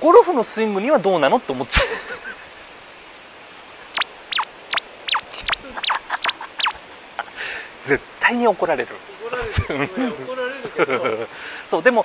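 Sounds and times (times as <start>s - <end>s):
speech: 0.0s - 1.9s, 7.9s - 12.0s
faint steady hiss: 0.0s - 12.0s
high chirps sliding downward: 4.0s - 6.8s.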